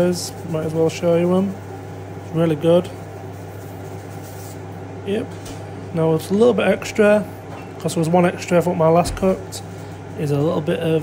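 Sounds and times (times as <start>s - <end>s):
kitchen appliance humming: 0.0s - 11.0s.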